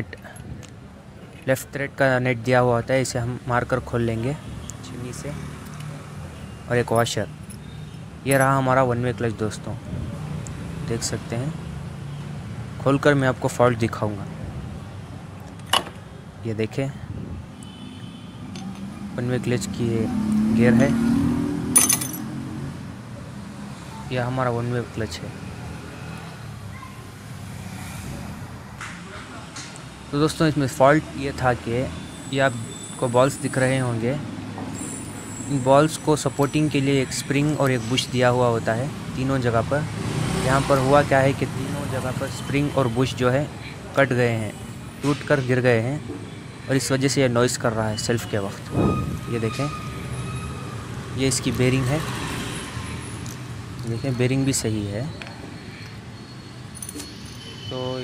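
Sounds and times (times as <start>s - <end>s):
low rumble of vehicle noise: 0.0s - 58.0s.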